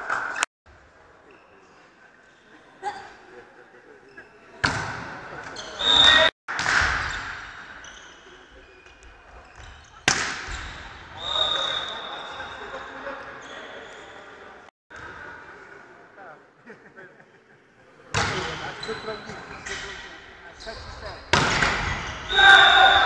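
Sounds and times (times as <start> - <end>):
referee's whistle: 5.6 - 6.3, 11.2 - 12.6
players shouting: 22.2 - 23.0.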